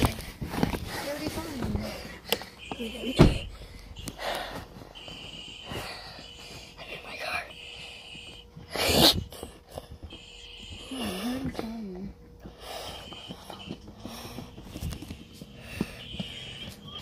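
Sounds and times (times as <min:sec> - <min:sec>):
soft breathing: 0:00.0 - 0:17.0.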